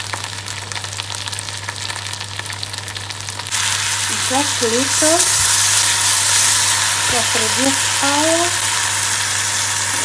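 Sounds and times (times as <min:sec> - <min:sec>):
crackles and pops: 0:00.0 - 0:04.0
fish and onions sizzling: 0:00.0 - 0:10.0.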